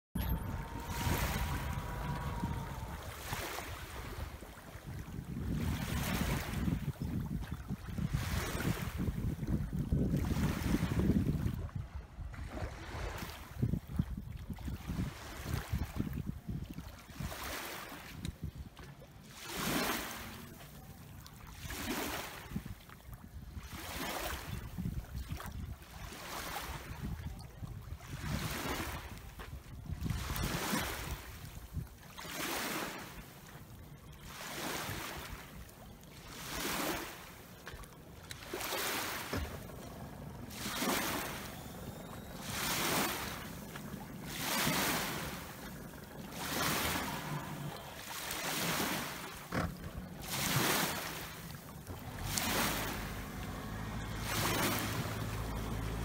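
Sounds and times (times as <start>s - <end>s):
wind on microphone: 0.2s - 20.6s, 21.2s - 32.2s, 33.8s - 56.0s
outboard motor rumble: 0.2s - 56.0s
small waves lapping: 0.2s - 56.0s.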